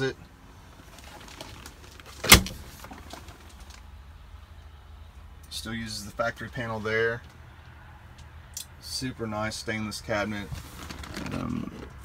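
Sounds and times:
refrigerator door shutting: 2.2s - 2.6s.

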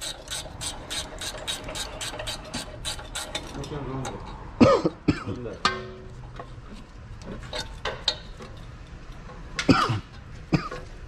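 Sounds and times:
ratchet wrench clicking: 0.0s - 4.2s.

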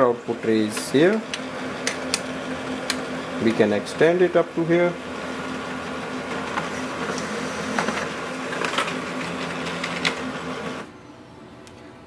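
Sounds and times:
laser printer printing: 5.1s - 10.9s.

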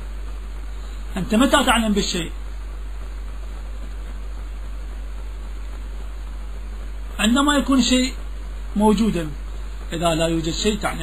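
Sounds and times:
constant deep hum: 0.0s - 11.0s
old recording hiss: 0.0s - 11.0s.

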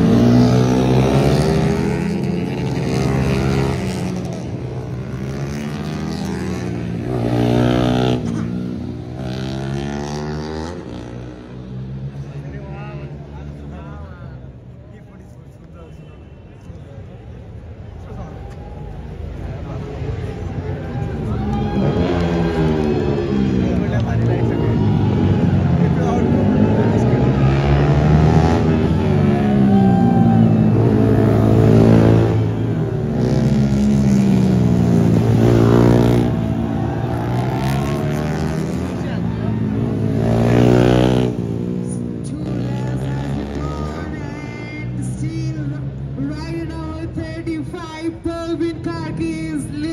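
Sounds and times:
racing motorcycles revving past: 0.0s - 12.0s, 21.6s - 44.2s.

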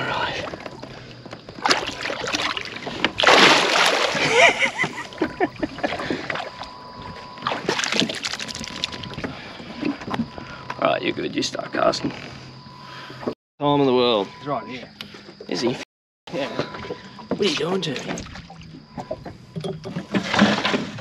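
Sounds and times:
water splashing: 1.6s - 9.2s.

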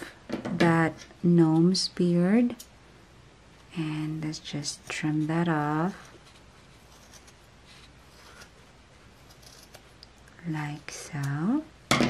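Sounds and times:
scissors snipping fibres: 11.1s - 11.4s.

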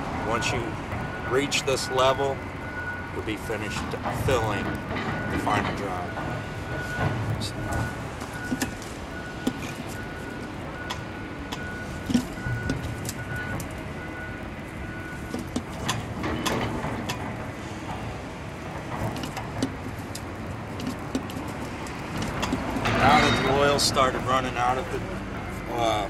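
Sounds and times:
pump handle clicks and clunks: 7.0s - 8.8s, 9.4s - 9.9s, 10.8s - 13.8s, 15.2s - 18.0s, 18.7s - 23.8s.

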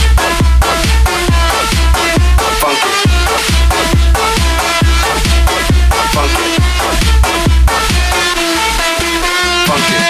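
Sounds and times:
electronic dance music: 0.0s - 10.0s
heavy kick drum: 0.0s - 10.0s.

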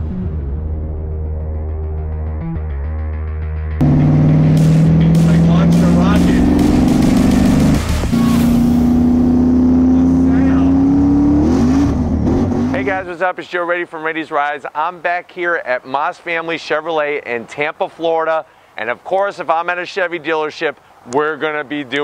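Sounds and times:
intro music: 0.0s - 11.5s
car engine climbing in pitch: 0.0s - 13.0s.

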